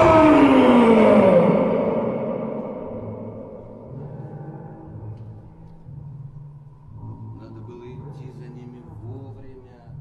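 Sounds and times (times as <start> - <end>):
man howling: 0.0 - 3.9.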